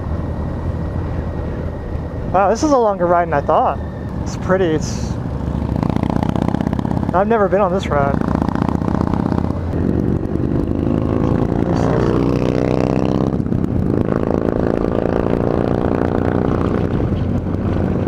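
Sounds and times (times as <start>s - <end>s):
wind rush: 0.0s - 7.2s
motorcycle engine running: 0.0s - 18.0s.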